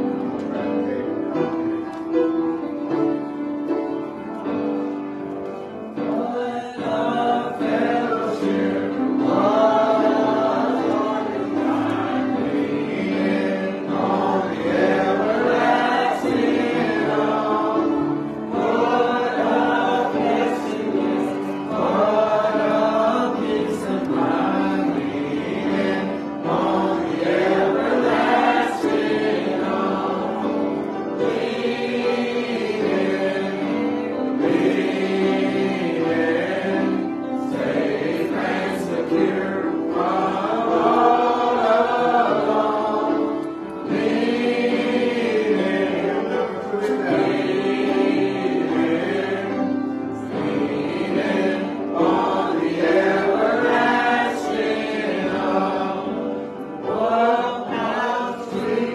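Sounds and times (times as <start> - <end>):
congregation singing a gospel song: 0.0 - 58.9.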